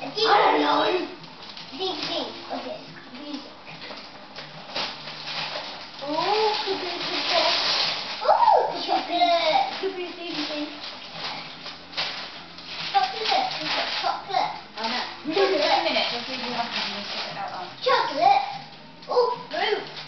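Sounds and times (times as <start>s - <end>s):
child talking: 0.0s - 3.5s, 6.0s - 7.6s, 8.4s - 10.8s, 12.9s - 14.7s, 17.8s - 19.9s
wrapping paper crinkling and tearing: 0.0s - 20.0s.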